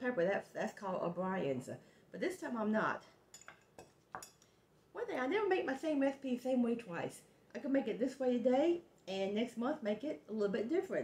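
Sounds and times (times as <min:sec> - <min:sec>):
kitchenware clinking on countertop: 0:03.3 - 0:04.5.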